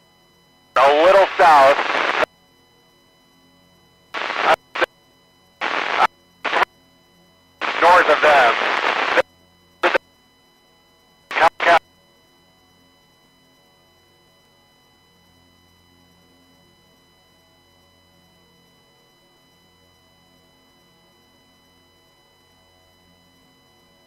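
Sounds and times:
faint steady whine: 0:00.0 - 0:24.0
radio transmissions: 0:00.8 - 0:02.3, 0:04.2 - 0:04.9, 0:05.6 - 0:06.7, 0:07.6 - 0:09.2, 0:11.3 - 0:11.8.

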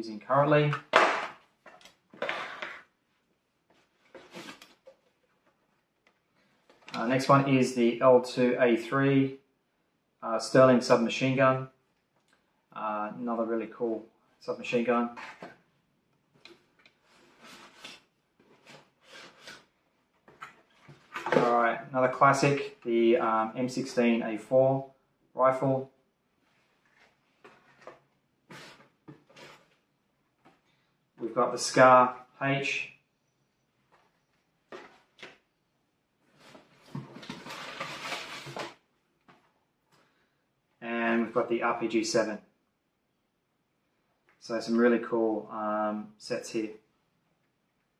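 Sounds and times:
cardboard rustling and scraping: 0:01.0 - 0:02.9, 0:03.8 - 0:05.3, 0:17.0 - 0:21.5, 0:26.5 - 0:29.8, 0:36.3 - 0:38.8.

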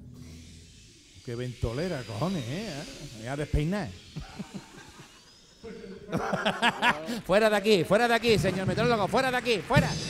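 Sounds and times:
men laughing into microphones: 0:04.1 - 0:07.4.

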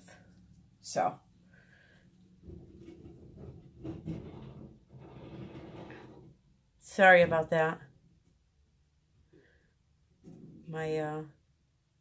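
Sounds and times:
wheeled garbage can rolling: 0:02.4 - 0:06.5.

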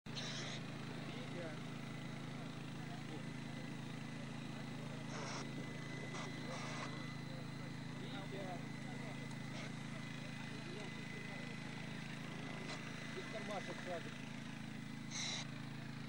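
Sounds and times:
steady low hum: 0:00.1 - 0:16.0
faint indistinct voices: 0:01.0 - 0:16.0.

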